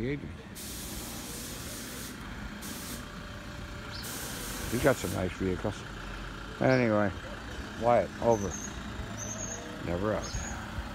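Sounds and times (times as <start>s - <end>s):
tyres hissing on road: 0.0s - 10.9s
pickup truck engine running low: 1.2s - 10.9s.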